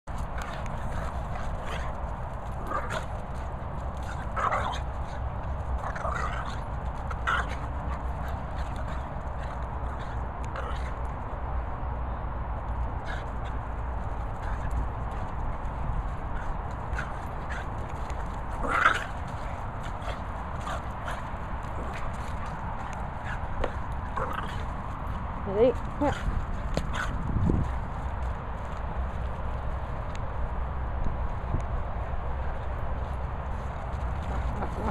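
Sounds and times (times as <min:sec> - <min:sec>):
steady low rumble: 0:00.0 - 0:34.9
dogs growling: 0:00.2 - 0:11.1, 0:13.0 - 0:25.2, 0:25.8 - 0:27.3
dog paws thudding on grass: 0:13.4 - 0:34.9.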